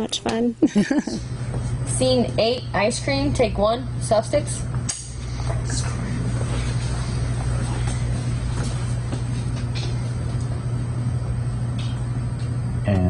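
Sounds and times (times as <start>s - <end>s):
low room hum: 0.0s - 13.0s.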